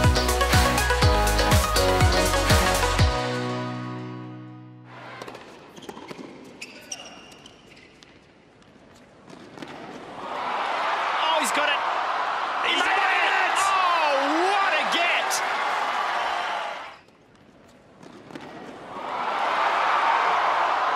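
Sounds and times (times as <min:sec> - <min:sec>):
crowd cheering and applauding: 0:10.2 - 0:17.0, 0:18.9 - 0:20.9.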